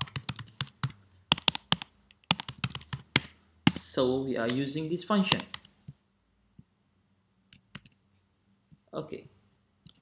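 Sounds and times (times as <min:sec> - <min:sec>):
keyboard keys clicking: 0:00.0 - 0:03.8.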